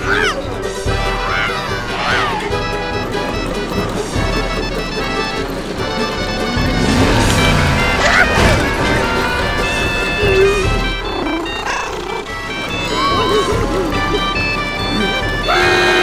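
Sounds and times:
cartoon background music: 0.0s - 16.0s
sharp hits: 6.1s - 10.8s.

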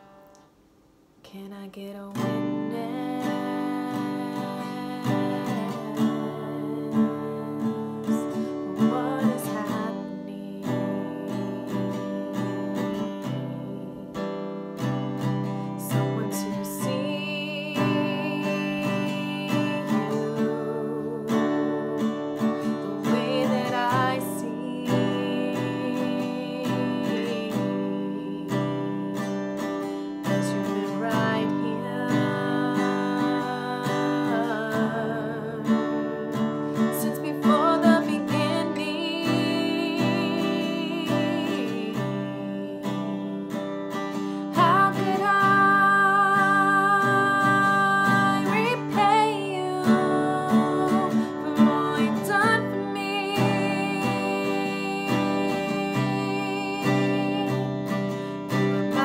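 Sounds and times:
woman singing: 1.2s - 59.0s
acoustic guitar strumming: 2.1s - 59.0s.

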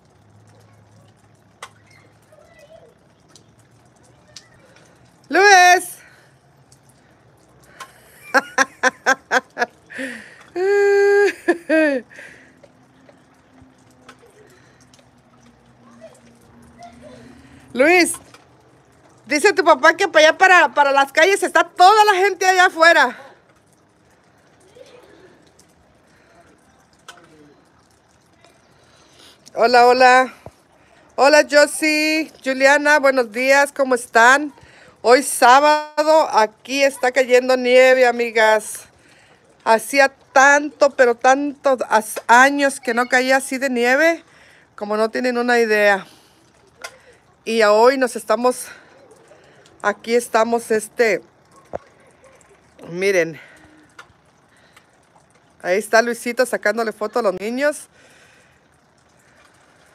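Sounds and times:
child yelping: 1.8s - 3.0s, 15.8s - 17.4s.

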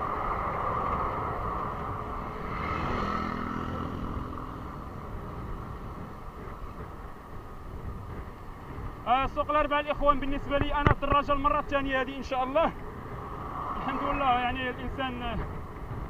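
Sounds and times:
lorry engine passing: 0.0s - 6.5s, 12.8s - 15.0s
bicycle road and wind noise: 0.0s - 16.0s.

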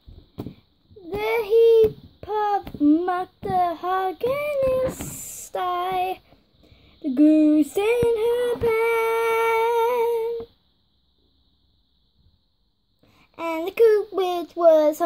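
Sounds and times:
child singing: 1.0s - 6.2s, 7.0s - 10.6s, 13.4s - 15.0s.

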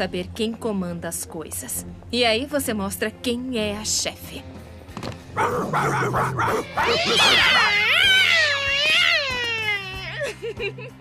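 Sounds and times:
cartoon cat yowl: 5.9s - 10.2s.

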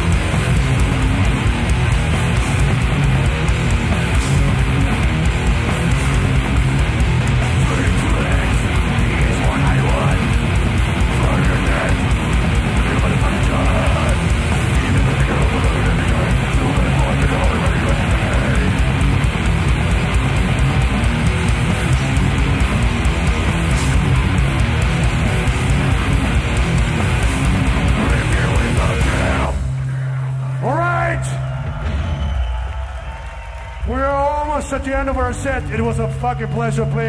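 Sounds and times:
death metal band playing: 0.0s - 37.0s.

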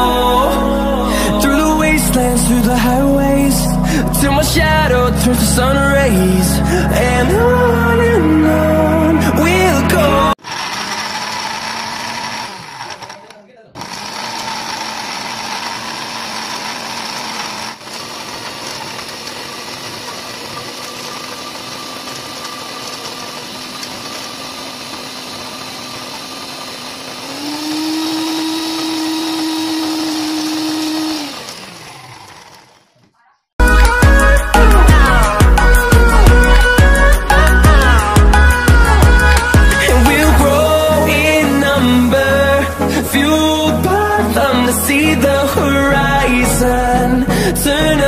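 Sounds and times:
electric blender pureeing: 10.4s - 33.1s.

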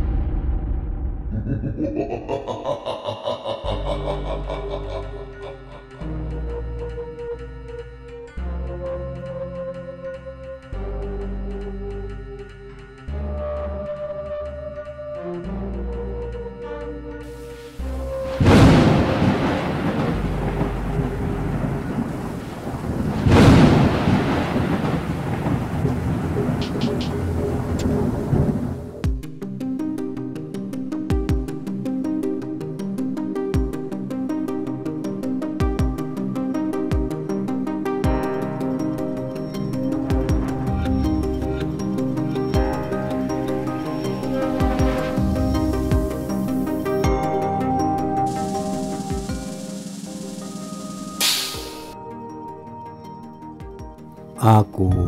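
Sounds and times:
thunderclaps: 0.0s - 1.8s, 18.2s - 29.1s
low dark horror drone: 0.0s - 7.0s
steady rain: 17.3s - 29.0s, 40.1s - 46.9s, 48.3s - 52.0s.

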